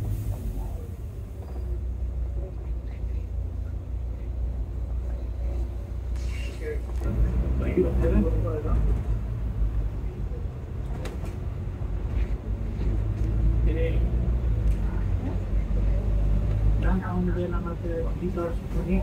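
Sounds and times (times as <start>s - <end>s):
bus diesel engine rumble: 0.0s - 19.0s
passengers talking: 0.0s - 19.0s.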